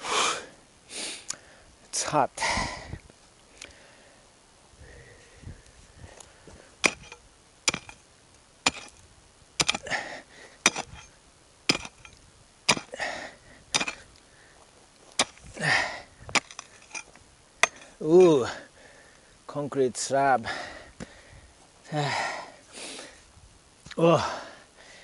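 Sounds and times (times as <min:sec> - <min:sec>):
pickaxe striking hard ground: 0:06.8 - 0:08.0, 0:08.6 - 0:09.0, 0:09.6 - 0:14.1, 0:15.2 - 0:18.4
rough scraping sounds: 0:06.8 - 0:08.0, 0:08.6 - 0:09.0, 0:10.6 - 0:13.0, 0:13.7 - 0:14.1.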